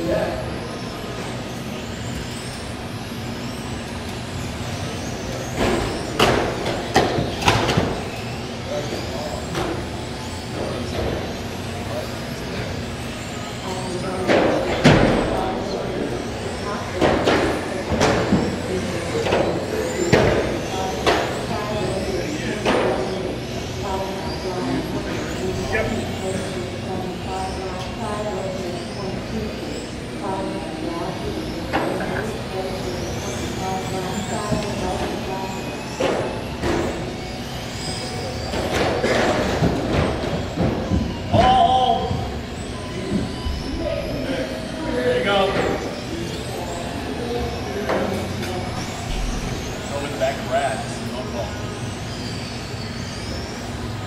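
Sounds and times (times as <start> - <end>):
electric motors whining: 0.0 - 54.0.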